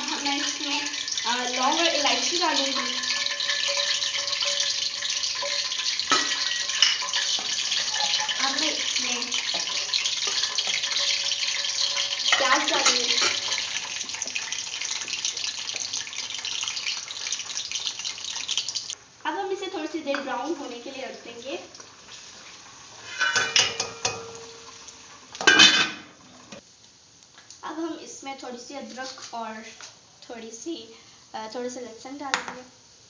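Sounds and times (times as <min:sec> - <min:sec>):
pot hissing on stove: 0:00.0 - 0:26.7
spoon scraping a metal pot: 0:02.3 - 0:08.7, 0:09.4 - 0:13.6, 0:23.0 - 0:24.3.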